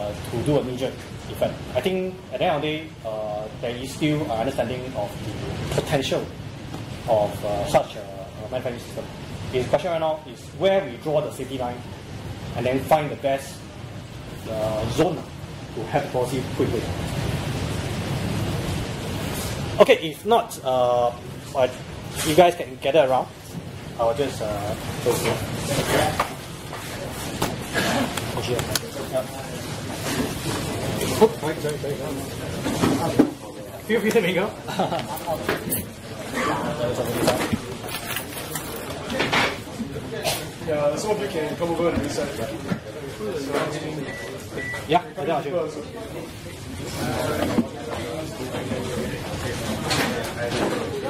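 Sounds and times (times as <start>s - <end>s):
man talking: 0.0s - 6.4s, 7.0s - 11.9s, 14.4s - 17.0s, 19.8s - 26.3s, 27.0s - 39.2s.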